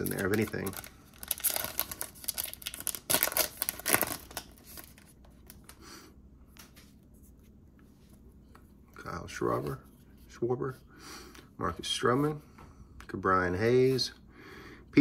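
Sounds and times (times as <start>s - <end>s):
foil pack tearing and crinkling: 0.0s - 5.0s
cards rustling: 0.0s - 5.8s.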